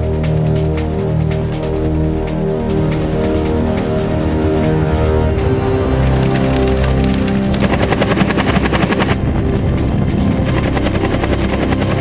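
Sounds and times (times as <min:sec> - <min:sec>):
background music: 0:00.0 - 0:12.0
helicopter rotor beating: 0:00.0 - 0:12.0.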